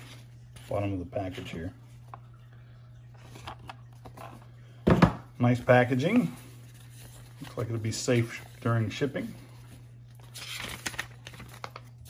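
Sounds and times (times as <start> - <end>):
paper clicks and rustles: 10.1 - 12.0.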